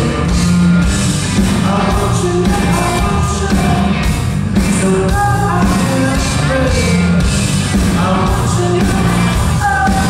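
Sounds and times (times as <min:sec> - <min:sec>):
man singing lead vocal: 0:00.0 - 0:00.6, 0:01.4 - 0:10.0
rock band playing live: 0:00.0 - 0:10.0.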